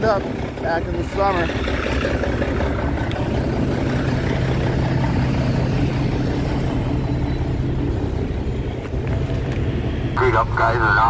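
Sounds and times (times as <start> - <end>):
diesel truck engine running: 0.0 - 11.0.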